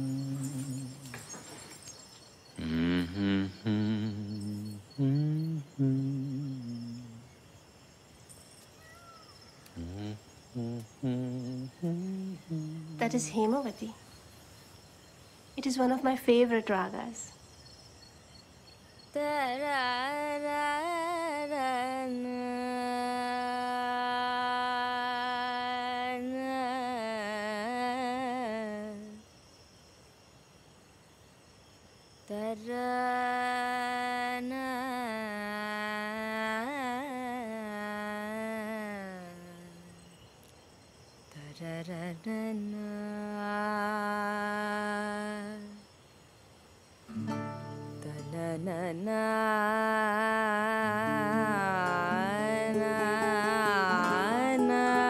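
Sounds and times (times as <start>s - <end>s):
woman humming a raga melody: 0.0s - 1.9s, 2.6s - 7.4s, 9.7s - 13.5s, 19.1s - 29.2s, 32.3s - 40.3s, 41.3s - 45.9s, 47.2s - 55.0s.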